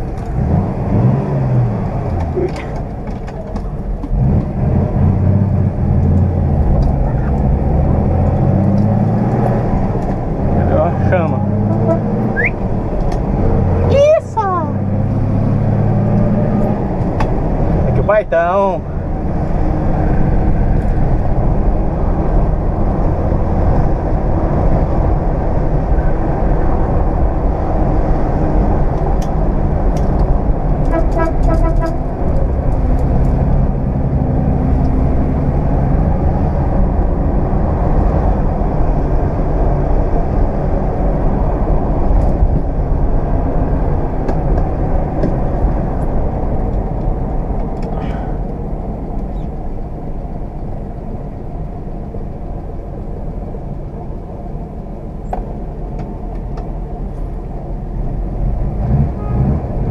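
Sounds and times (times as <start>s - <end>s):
car engine running inside cabin: 0.0s - 59.9s
road noise: 0.0s - 59.9s.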